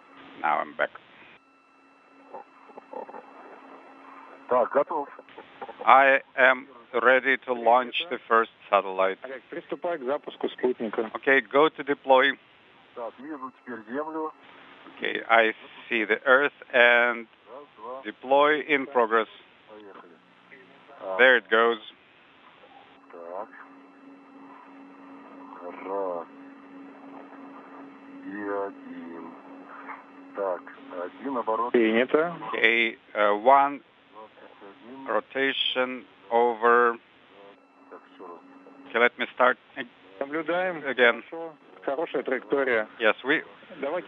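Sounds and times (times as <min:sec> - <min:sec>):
radio hiss and hum: 0:00.0 - 0:44.0
man speaking over radio: 0:00.4 - 0:01.0, 0:04.5 - 0:12.4, 0:13.0 - 0:14.3, 0:15.0 - 0:17.2, 0:18.0 - 0:20.2, 0:21.0 - 0:21.9, 0:23.0 - 0:23.8, 0:24.6 - 0:44.0
faint voices: 0:02.2 - 0:07.0, 0:22.9 - 0:44.0.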